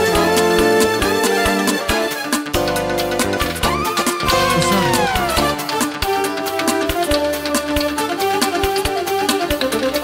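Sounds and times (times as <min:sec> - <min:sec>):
instrumental dance tune: 0:01.5 - 0:06.9
drum beat: 0:03.4 - 0:07.0.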